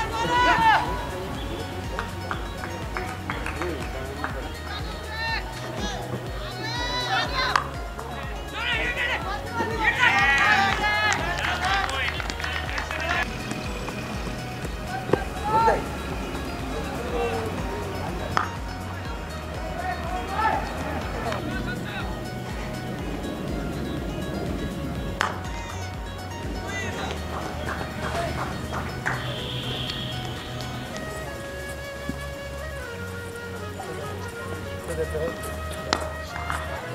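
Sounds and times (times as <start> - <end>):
fielders calling out: 0.0 - 36.9
open-ground ambience: 0.0 - 36.9
running footsteps: 0.0 - 36.9.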